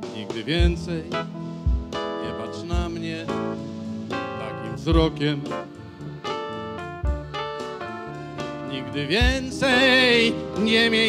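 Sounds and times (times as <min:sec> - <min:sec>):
man singing with vibrato: 0:00.0 - 0:01.4, 0:02.0 - 0:06.6, 0:07.2 - 0:11.0
band playing slow song: 0:00.0 - 0:11.0.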